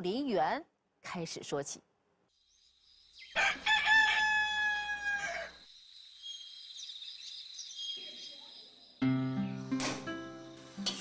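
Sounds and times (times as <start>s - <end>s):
small birds chirping: 2.3s - 3.5s, 5.5s - 11.0s
rooster crowing: 3.3s - 5.7s.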